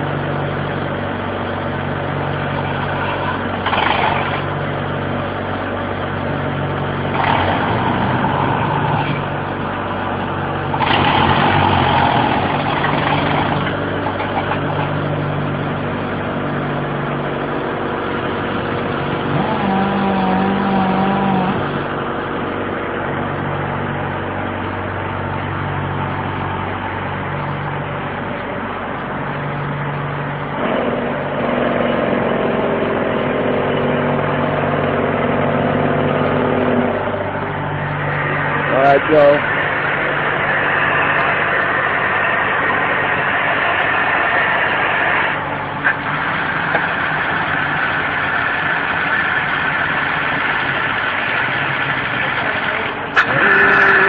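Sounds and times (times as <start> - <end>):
air drill droning with throb: 0.0 - 54.0.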